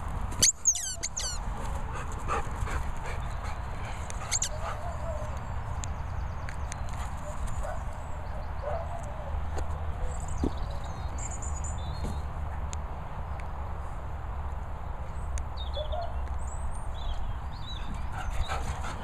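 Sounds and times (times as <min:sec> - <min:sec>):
dog yipping and whimpering: 0:00.4 - 0:01.4, 0:04.2 - 0:05.2
dog barking: 0:08.6 - 0:09.1.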